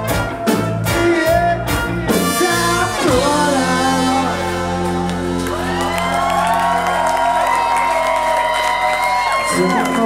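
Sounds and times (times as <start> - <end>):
trumpet and trombone long notes: 0.0 - 7.7
ska band playing: 0.0 - 10.0
crowd cheering and whooping: 4.3 - 10.0.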